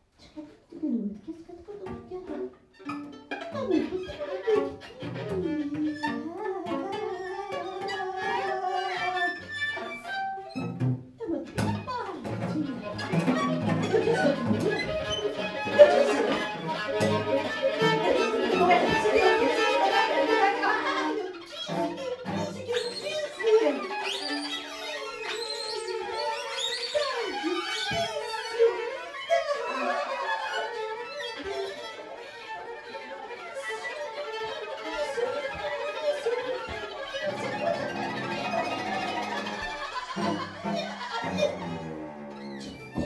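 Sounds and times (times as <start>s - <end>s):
low cello notes: 1.2s - 43.0s
bowed strings sliding pitches: 1.9s - 43.0s.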